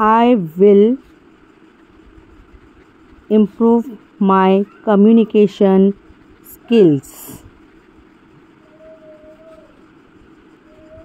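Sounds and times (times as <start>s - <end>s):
faint steady hum with low rumble: 0.0s - 11.0s.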